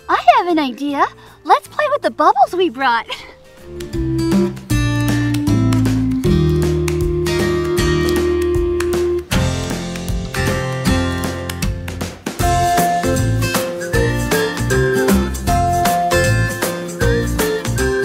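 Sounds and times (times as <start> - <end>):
steady bass line: 3.8 - 18.0.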